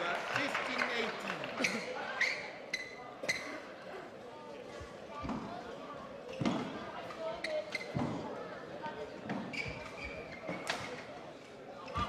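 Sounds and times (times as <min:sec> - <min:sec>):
faint hall noise: 0:00.0 - 0:12.0.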